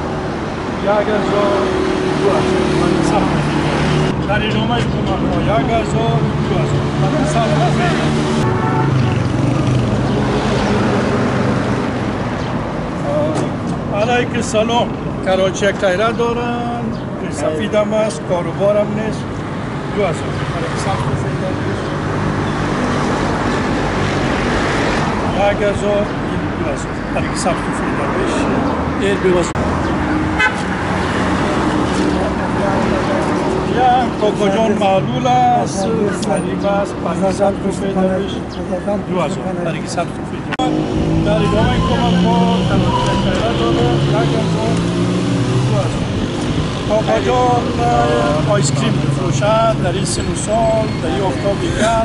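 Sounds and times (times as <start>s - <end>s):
vehicle passing: 0.0s - 13.3s, 19.1s - 52.0s
traffic road noise: 0.0s - 52.0s
men talking: 0.4s - 11.0s, 11.6s - 52.0s
man's voice: 32.1s - 46.1s, 46.8s - 52.0s.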